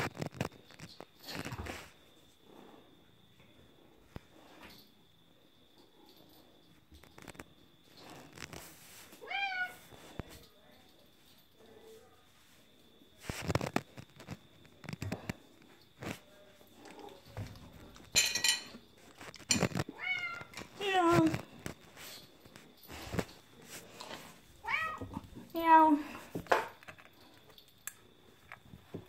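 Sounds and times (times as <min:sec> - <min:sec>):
bumps and rustles: 0:00.0 - 0:02.0, 0:13.2 - 0:27.2
cat meowing: 0:09.2 - 0:09.8, 0:19.9 - 0:20.5, 0:24.6 - 0:25.1.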